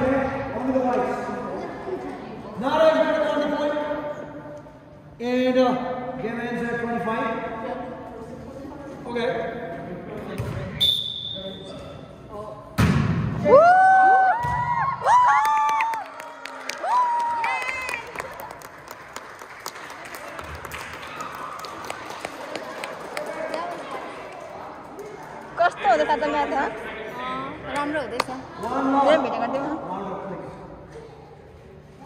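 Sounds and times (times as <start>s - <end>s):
crowd chatter: 0.0s - 2.8s, 19.6s - 32.0s
volleyball smack: 12.8s - 13.4s, 14.4s - 14.7s.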